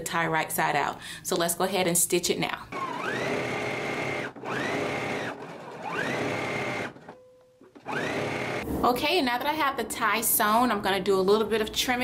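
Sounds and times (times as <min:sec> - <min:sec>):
sewing machine motor whine: 0:02.7 - 0:07.1, 0:07.8 - 0:08.6.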